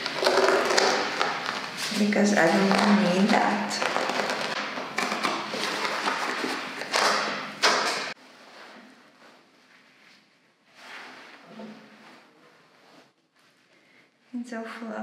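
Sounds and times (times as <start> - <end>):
chair padding being torn: 0.0 - 8.2.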